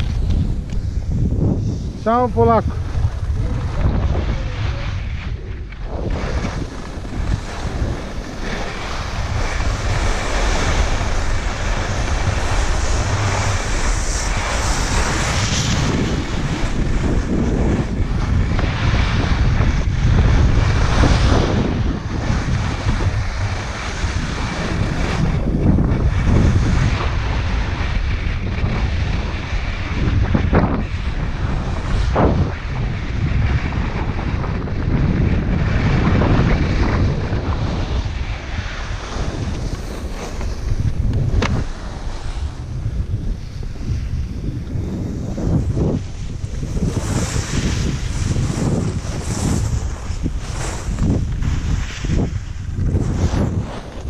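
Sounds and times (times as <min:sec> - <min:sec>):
skis sliding on snow: 0:00.0 - 0:54.0
wind buffeting microphone: 0:00.0 - 0:54.0.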